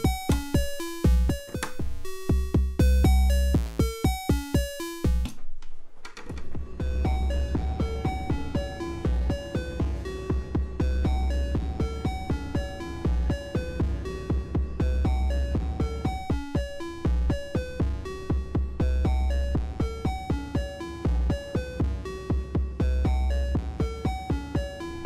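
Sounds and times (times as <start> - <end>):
deep kick drum pulsing: 6.6 - 19.9.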